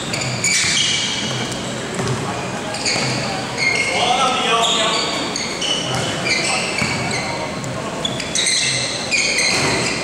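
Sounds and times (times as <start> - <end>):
shoes squeaking on court floor: 0.0 - 10.0
basketball bouncing: 0.1 - 2.3, 6.8 - 7.1.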